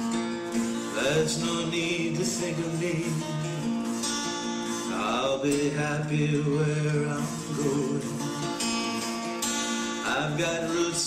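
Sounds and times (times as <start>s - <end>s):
acoustic guitar playing: 0.0s - 11.0s
person singing: 0.9s - 3.7s, 4.8s - 8.6s, 10.0s - 11.0s.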